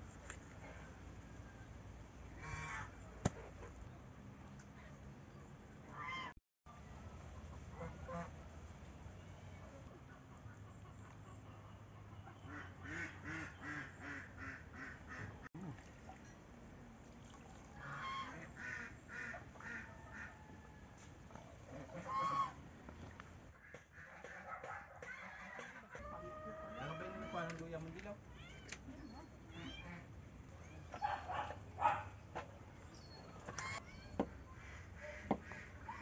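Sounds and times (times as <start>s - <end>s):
fowl calling: 21.7s - 22.6s.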